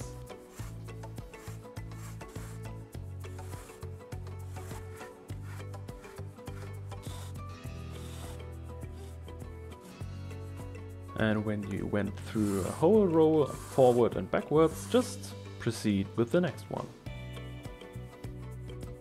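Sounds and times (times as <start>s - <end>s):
rope scraping through leather: 0.0s - 9.3s, 12.0s - 15.2s
background music with bass: 0.0s - 19.0s.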